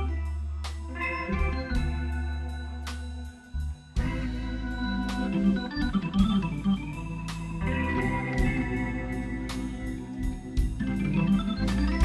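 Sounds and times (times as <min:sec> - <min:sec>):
bass: 0:00.0 - 0:12.0
drums with cymbal strokes: 0:00.0 - 0:12.0
organ playing slow blues: 0:00.0 - 0:12.0.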